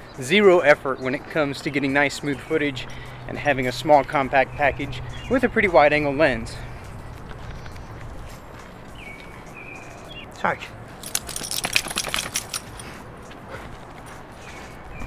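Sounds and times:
dog collar tags jingling: 10.9s - 13.4s.

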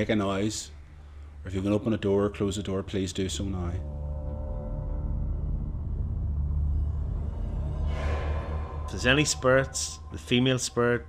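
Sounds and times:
low rumbling drone: 3.1s - 11.0s.

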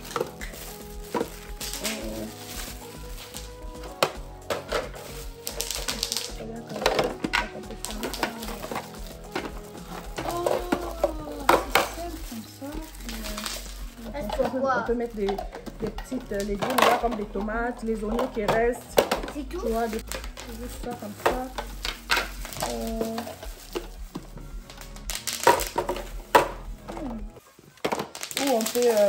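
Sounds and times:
plastic bins clicking and knocking: 0.0s - 12.2s, 13.0s - 29.0s
background music with held tones: 0.0s - 29.0s
plastic film crinkling: 0.0s - 29.0s.

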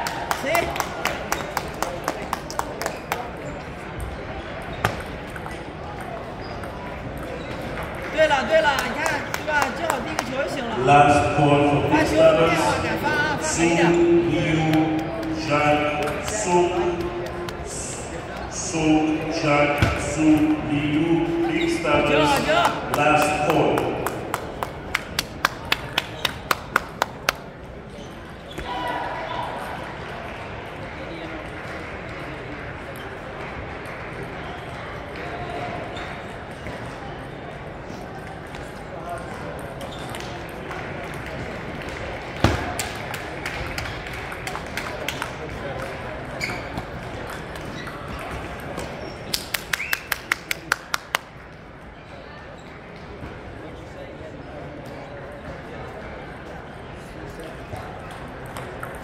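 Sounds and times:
table tennis ball bouncing: 4.8s - 8.0s, 58.1s - 59.0s.

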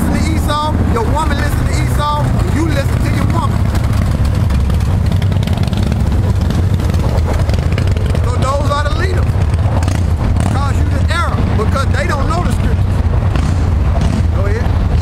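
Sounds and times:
man speaking: 0.0s - 3.6s, 8.2s - 9.3s, 10.5s - 12.9s
low mechanical rumble: 0.0s - 15.0s.

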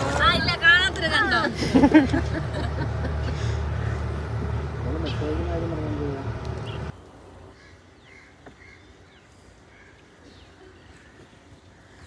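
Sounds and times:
boat engine rumble: 0.0s - 12.0s.

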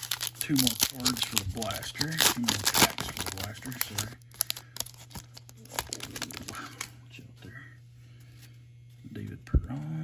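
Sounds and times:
foil wrapper crinkling: 0.0s - 7.0s.

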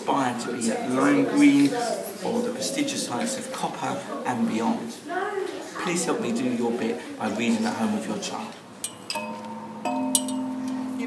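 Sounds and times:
metal chime pipes ringing: 8.8s - 11.0s.

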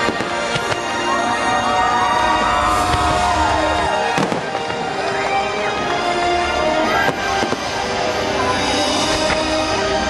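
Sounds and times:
fireworks bursting: 0.0s - 1.1s, 2.1s - 6.0s, 6.8s - 8.1s
music soundtrack: 0.0s - 10.0s
sharp firework bang: 4.1s - 4.8s.

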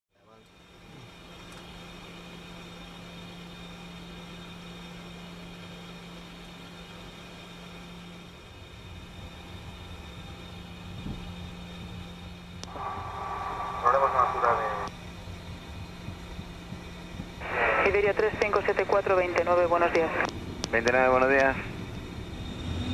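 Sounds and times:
jet airliner noise: 0.5s - 22.9s
air traffic control radio speech: 12.6s - 14.9s, 17.4s - 21.7s.

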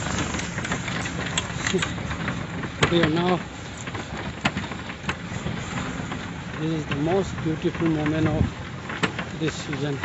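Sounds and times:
tractor rumbling and rattling: 0.0s - 10.0s.

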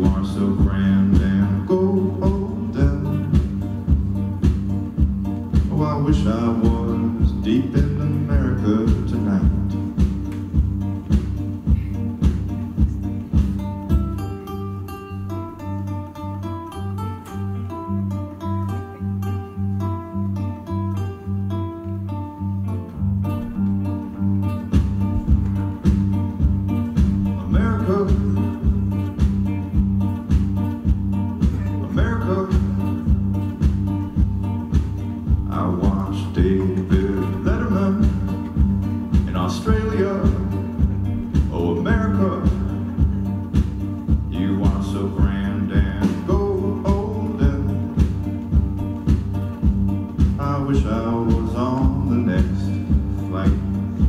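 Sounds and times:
drum beat: 0.0s - 14.4s, 24.6s - 54.0s
held bass notes: 0.0s - 54.0s
picked lead guitar notes: 0.0s - 54.0s
strummed acoustic guitar: 0.0s - 54.0s.

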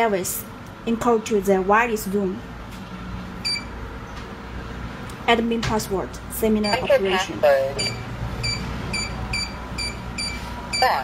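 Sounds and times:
keypad beeps: 3.5s - 3.7s, 6.6s - 7.0s, 7.8s - 11.0s.

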